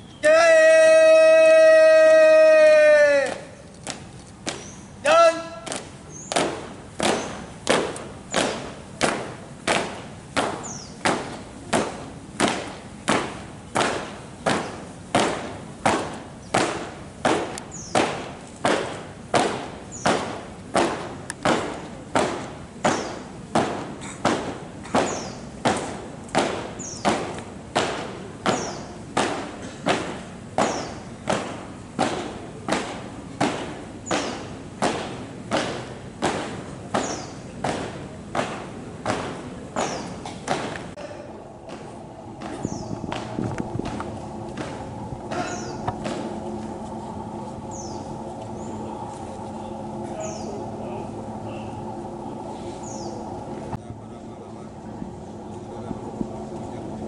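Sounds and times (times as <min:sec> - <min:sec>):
marching footsteps on pavement: 0:03.2 - 0:53.8.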